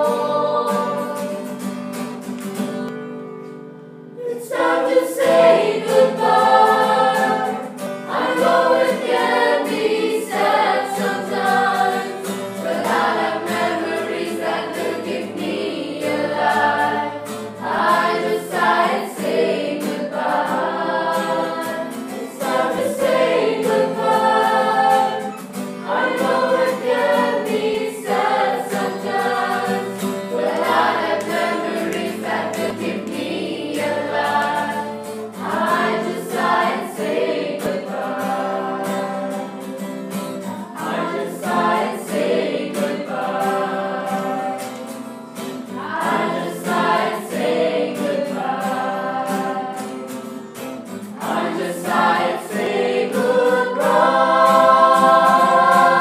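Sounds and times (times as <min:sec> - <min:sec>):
group singing in chorus: 0:00.0 - 0:01.8, 0:04.2 - 0:56.0
musical accompaniment: 0:00.0 - 0:56.0.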